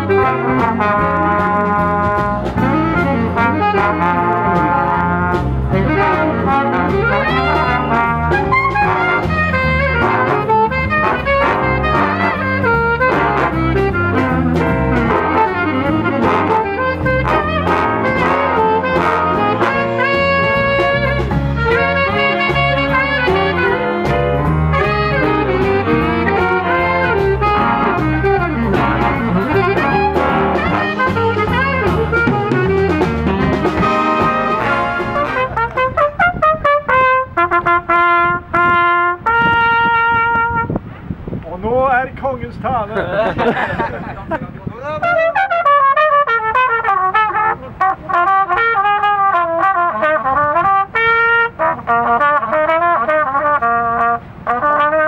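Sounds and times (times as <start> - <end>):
lone trumpet holding notes: 0.0 - 41.4, 44.9 - 55.0
big band playing jazz: 0.0 - 55.0.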